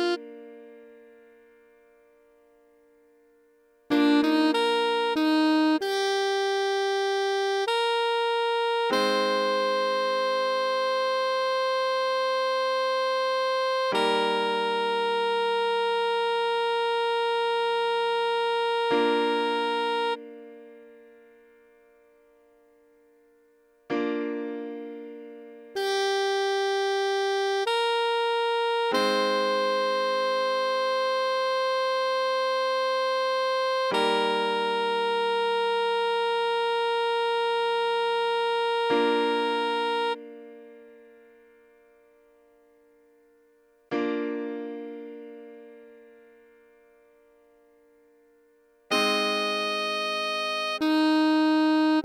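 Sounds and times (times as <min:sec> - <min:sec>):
synthesized saxophone note: 0:00.0 - 0:01.0, 0:03.9 - 0:20.8, 0:25.8 - 0:40.8, 0:48.9 - 0:52.0
held keyboard chord: 0:00.0 - 0:03.1, 0:03.8 - 0:23.0, 0:23.8 - 0:43.3, 0:43.9 - 0:48.1, 0:48.8 - 0:52.0.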